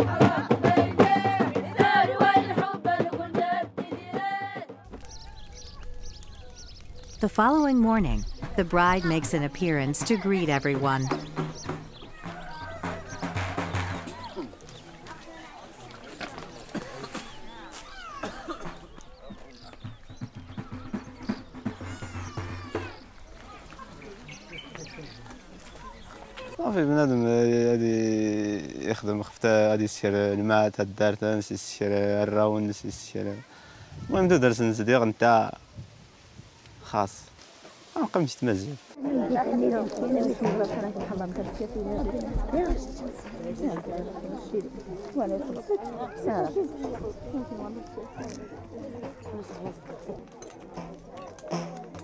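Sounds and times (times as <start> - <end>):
voices calling out: 4.8 - 28.5, 38.9 - 52.0
women chattering: 4.9 - 26.6, 39.0 - 52.0
rapid low thumps: 6.7 - 14.5.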